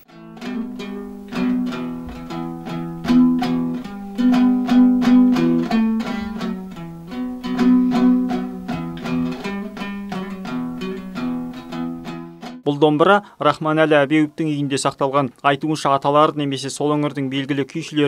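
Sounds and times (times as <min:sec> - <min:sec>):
two-string lute strummed: 0:00.0 - 0:12.7.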